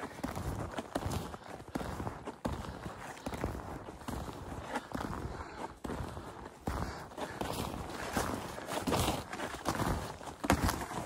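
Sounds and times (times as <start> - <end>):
snowshoe footsteps crunching snow: 0.0 - 11.0.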